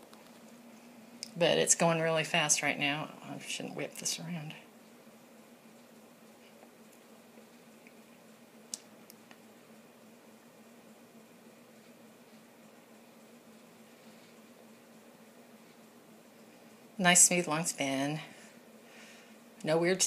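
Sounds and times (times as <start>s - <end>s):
faint room hum: 0.0s - 20.0s.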